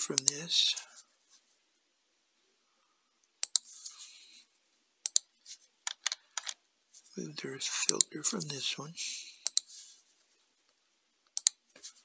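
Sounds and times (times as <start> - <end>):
computer mouse clicks: 0.2 - 0.4, 3.3 - 3.7, 5.0 - 5.3, 9.4 - 9.7, 11.3 - 11.6.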